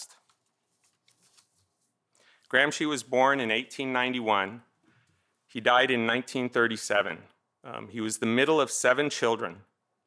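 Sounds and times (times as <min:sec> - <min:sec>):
paper rustling: 0:00.0 - 0:02.3.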